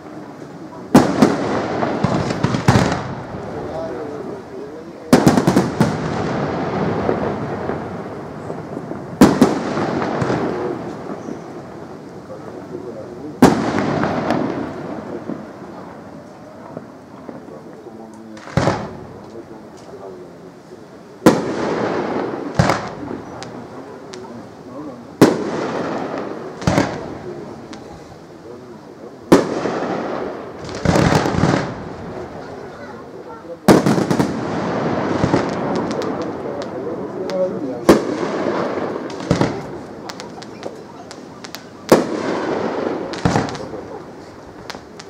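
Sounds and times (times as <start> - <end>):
fireworks bangs: 0.0 - 45.0
fireworks crackling: 0.0 - 45.0
rolling echo: 0.0 - 45.0.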